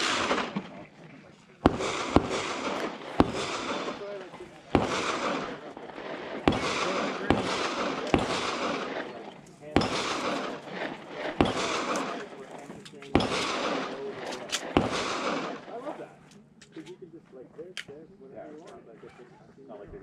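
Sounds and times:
distant pistol shots: 0.0 - 0.9, 1.6 - 12.4, 13.1 - 15.8
rolling echo of shots: 0.0 - 1.0, 1.6 - 15.9.

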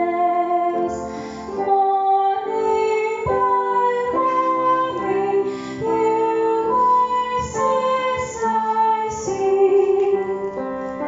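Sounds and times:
woman singing a hymn: 1.6 - 10.6.

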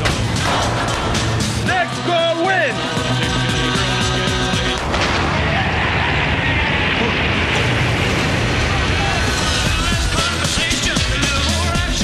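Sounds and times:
music: 0.0 - 5.6, 8.7 - 12.0.

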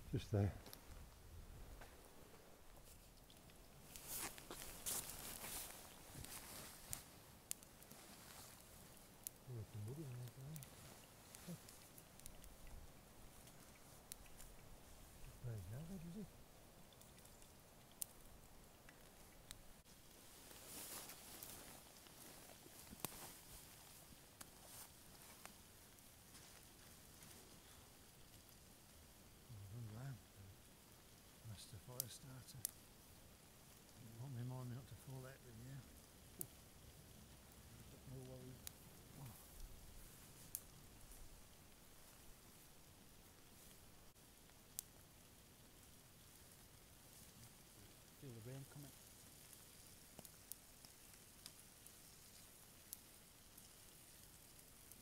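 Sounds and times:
soft rustling: 0.0 - 28.7
faint hiss: 0.0 - 55.0
wood stove crackling and popping: 0.0 - 55.0
low murmur of a voice: 9.4 - 11.8, 15.2 - 16.3, 29.4 - 30.6, 37.8 - 39.6.

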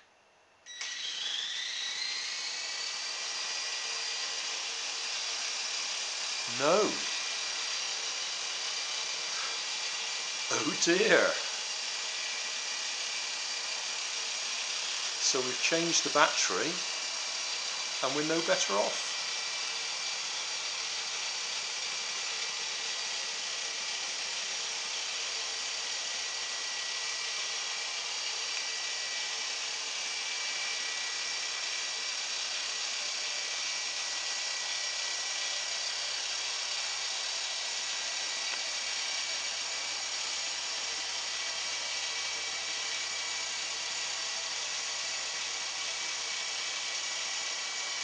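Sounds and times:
toy helicopter motors whirring: 0.7 - 48.0.

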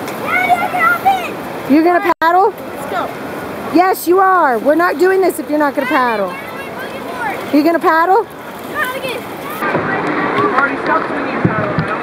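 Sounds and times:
people's voices: 0.0 - 12.0
river water rushing: 0.0 - 12.0.

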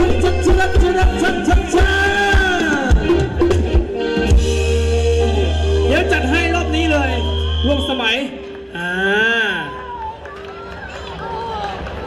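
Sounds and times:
man talking over loudspeaker: 0.0 - 3.1, 5.8 - 9.8
crowd chatter: 0.0 - 12.0.

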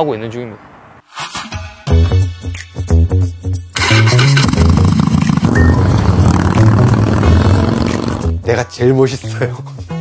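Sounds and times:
background music with bass line: 1.1 - 10.0
motorcycle engine rumbling: 4.4 - 8.2.

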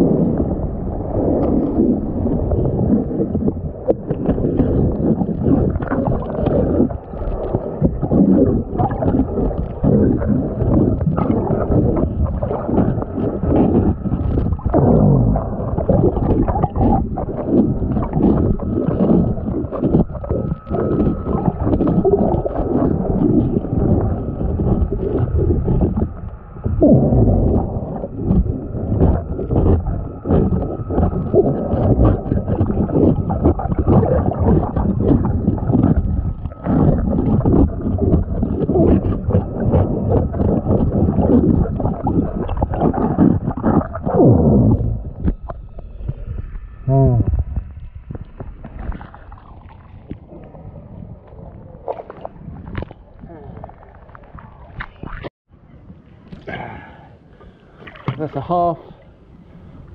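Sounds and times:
water rush: 0.0 - 46.1, 57.1 - 59.9
underwater scrubbing of boat hull: 0.0 - 55.3.

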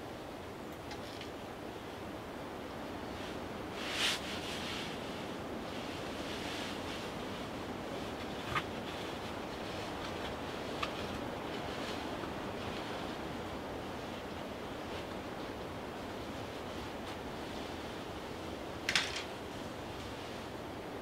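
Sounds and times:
wind through foliage: 0.0 - 21.0.

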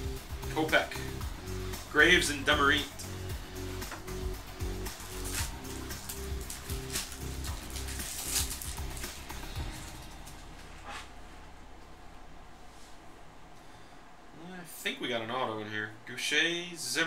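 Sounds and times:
background music: 0.0 - 14.3
wrapper crinkling and tearing: 4.9 - 10.6.

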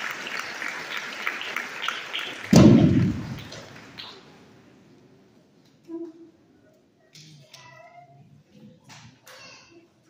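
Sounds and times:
crowd clapping: 0.0 - 4.6
loud low thud: 2.5 - 3.5.

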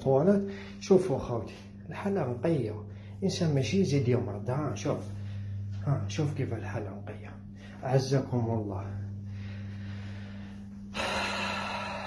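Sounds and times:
steady low hum: 0.0 - 12.0
person breathing loudly: 9.1 - 12.0.

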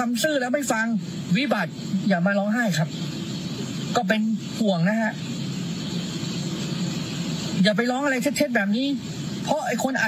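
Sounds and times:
car cabin rumble and hiss: 0.0 - 10.0.

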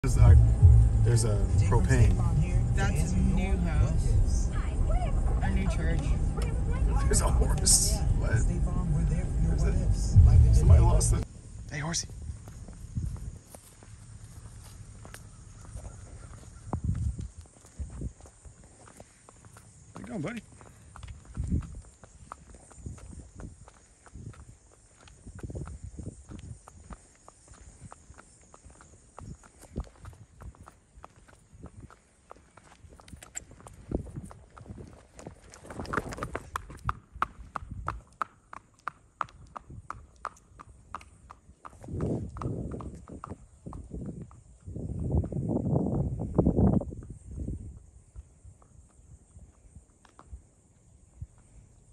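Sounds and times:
noisy bursts: 0.0 - 12.7
horse hooves on asphalt: 0.2 - 51.9.

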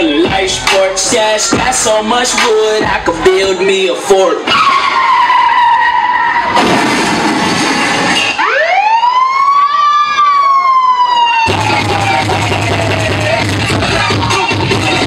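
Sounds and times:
dance beat with heavy bass: 0.0 - 4.5, 11.5 - 15.0
music on sound system: 0.0 - 6.5, 11.3 - 15.0
siren-like sweep: 7.6 - 12.6.

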